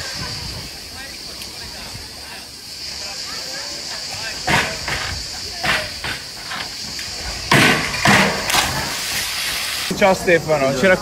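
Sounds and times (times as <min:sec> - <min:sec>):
steady hiss: 0:00.0 - 0:11.0
diver splashing into pool: 0:07.6 - 0:09.9.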